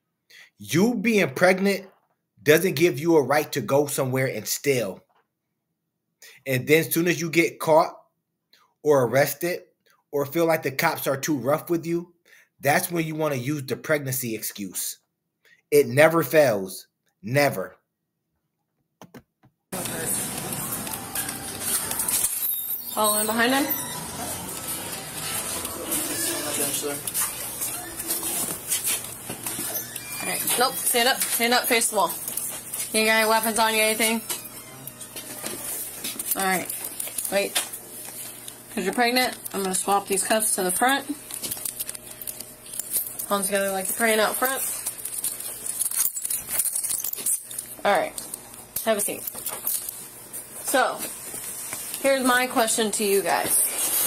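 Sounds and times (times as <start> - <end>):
rustling and handling noise: 19.8 - 54.0
handcuffs moving: 41.2 - 47.8.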